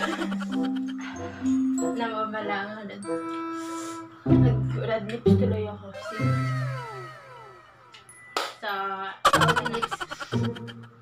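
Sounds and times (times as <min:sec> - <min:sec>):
low held comical notes: 0:03.0 - 0:08.2.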